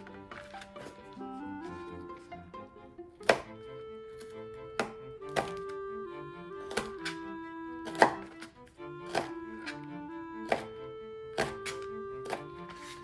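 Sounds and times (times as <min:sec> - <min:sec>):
background music with held notes: 0:00.0 - 0:13.0
knife slicing peppers: 0:07.8 - 0:08.3, 0:10.4 - 0:10.7.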